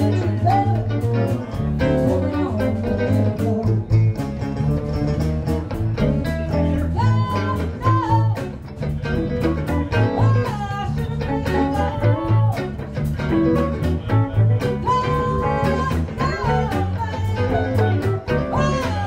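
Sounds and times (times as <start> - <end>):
woman singing: 0.0 - 1.2, 6.7 - 8.6, 9.6 - 12.8, 14.8 - 19.0
bass guitar: 0.0 - 19.0
drums keeping a steady beat: 0.0 - 19.0
electric guitars: 0.0 - 19.0.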